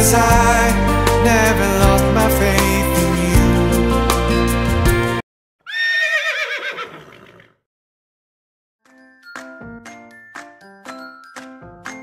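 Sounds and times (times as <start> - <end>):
song playing: 0.0 - 5.2
horse whinnying: 5.6 - 7.6.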